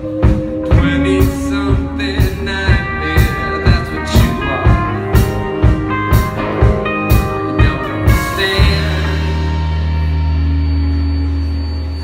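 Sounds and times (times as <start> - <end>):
sustained electric guitar and bass chord: 0.0 - 12.0.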